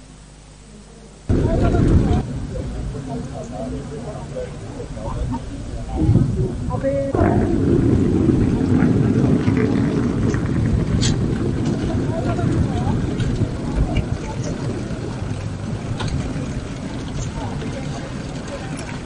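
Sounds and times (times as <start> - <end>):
background voices: 0.7 - 19.0
low rumble of engines: 1.1 - 19.0
scattered clatters: 7.2 - 19.0.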